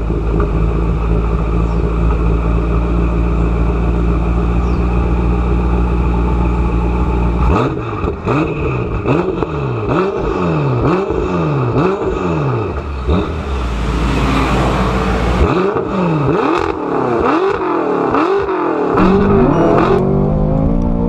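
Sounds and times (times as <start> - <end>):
car engine idling: 0.0 - 9.9, 11.6 - 17.0
engine revving in throttle blips: 4.5 - 21.0
exhaust cracks: 18.9 - 21.0.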